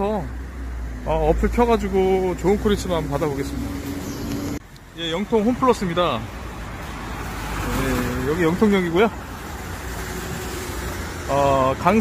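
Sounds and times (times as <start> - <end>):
car engines humming: 0.0 - 12.0
tyre noise on wet road: 1.2 - 12.0.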